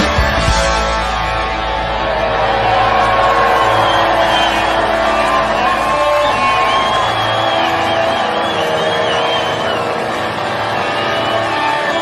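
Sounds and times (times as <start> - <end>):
crowd noise: 0.0 - 12.0
distorted electric guitars: 0.0 - 12.0
live rock band playing loud: 0.0 - 12.0.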